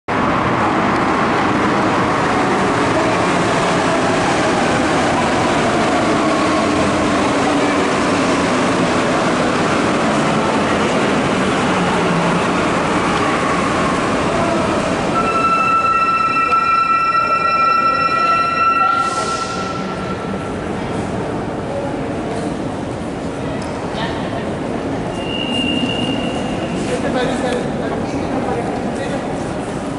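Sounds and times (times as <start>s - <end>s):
metro station rumble: 0.1s - 29.9s
train running along tracks: 0.1s - 29.9s
high-pitched train squeal: 15.1s - 20.8s, 25.1s - 26.9s.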